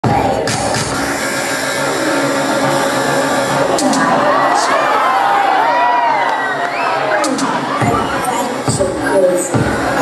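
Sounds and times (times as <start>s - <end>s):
audience noise: 0.0s - 10.0s
pop dance music over speakers: 0.0s - 10.0s.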